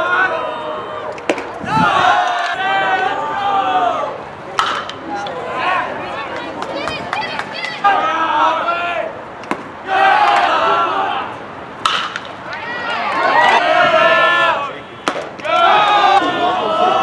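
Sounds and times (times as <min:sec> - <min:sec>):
crowd calling out and cheering: 0:00.0 - 0:17.0.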